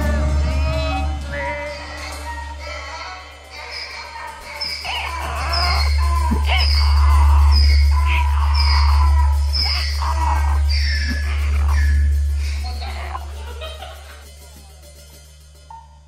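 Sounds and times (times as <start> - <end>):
low bass drone: 0.0 - 3.3, 4.2 - 16.0
short high falling squeals: 0.0 - 13.3.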